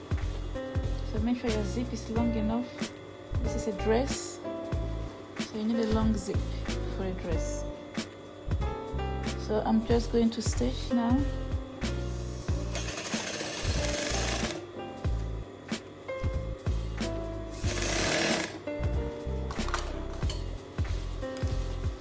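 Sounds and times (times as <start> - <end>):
sewing machine stitching: 12.8 - 14.6, 17.6 - 18.6.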